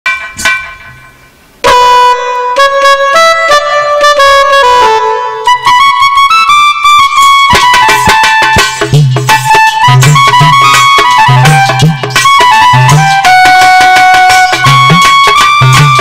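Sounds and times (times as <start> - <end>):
sharp drum strokes: 0.1 - 1.8, 7.5 - 16.0
harmonium melody: 1.6 - 16.0.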